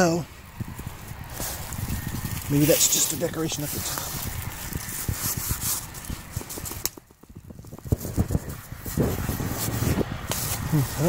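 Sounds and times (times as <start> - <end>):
dry leaves crackling and rustling: 0.0 - 7.0.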